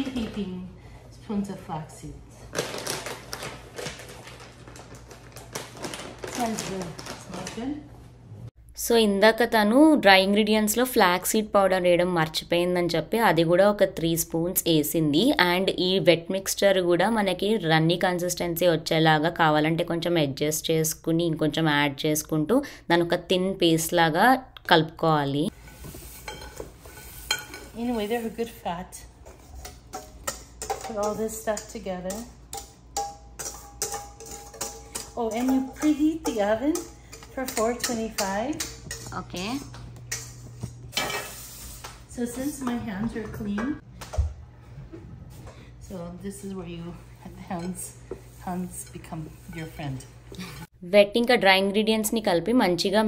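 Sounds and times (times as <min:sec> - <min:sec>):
plastic bag crinkling: 0:02.5 - 0:07.8.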